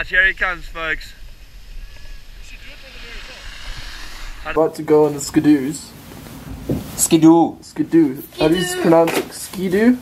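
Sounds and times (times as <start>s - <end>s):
wind rumble on microphone: 0.0s - 5.7s, 6.4s - 7.0s.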